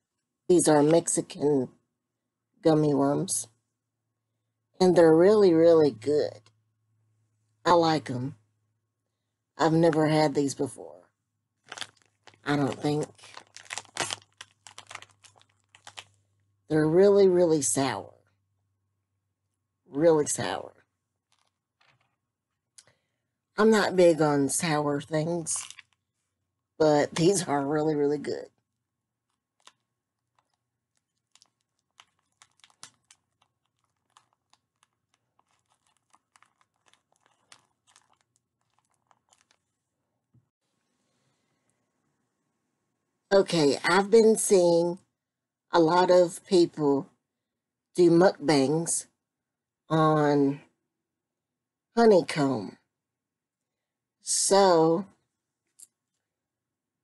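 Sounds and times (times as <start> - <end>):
plastic candy bag crinkling: 11.6 - 16.4, 21.2 - 22.4, 25.4 - 26.1, 29.0 - 39.8.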